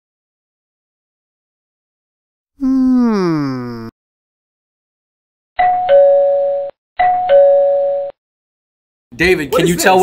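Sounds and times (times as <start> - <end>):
ding-dong doorbell chime: 5.6 - 8.2.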